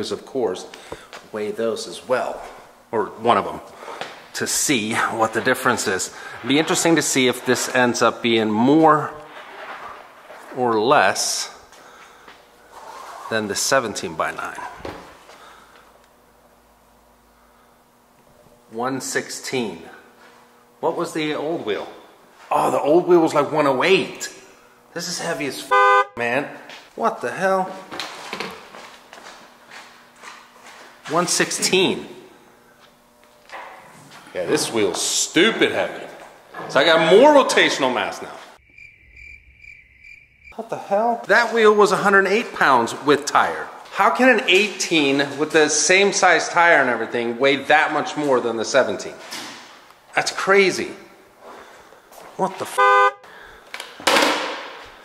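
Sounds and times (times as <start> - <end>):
footsteps on concrete: 11.7 - 12.5, 27.8 - 31.2, 51.5 - 52.6.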